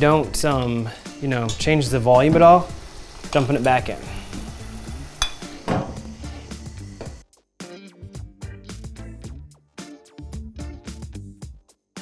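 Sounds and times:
liquid hissing: 2.4 - 7.2
background music with a beat: 4.4 - 12.0
metal lid clink: 5.2 - 5.5.

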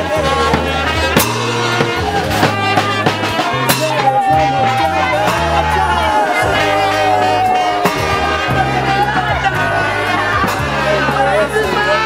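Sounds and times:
music with drums and bass: 0.0 - 12.0.

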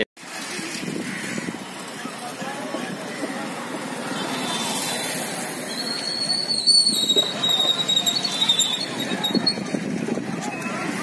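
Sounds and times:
busy road traffic noise: 0.0 - 11.0.

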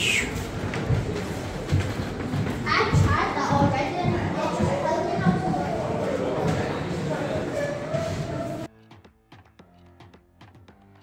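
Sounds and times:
children chattering: 2.6 - 8.7.

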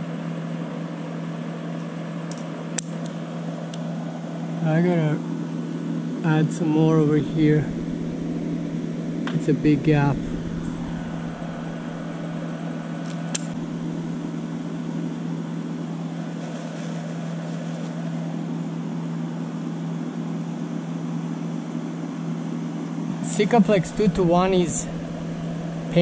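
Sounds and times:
motor humming: 6.3 - 19.0, 22.9 - 26.0.

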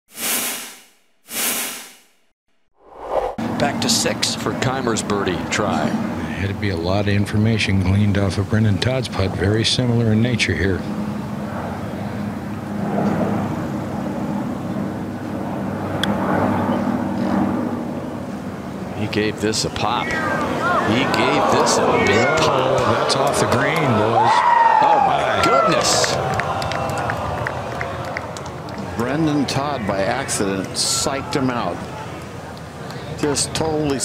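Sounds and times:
whoosh sound effects: 0.1 - 2.2, 2.8 - 3.5
low engine-like drone: 2.9 - 33.4.

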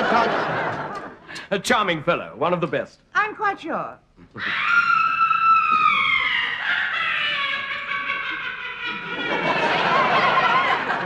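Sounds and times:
high-pitched scream: 4.4 - 7.7.

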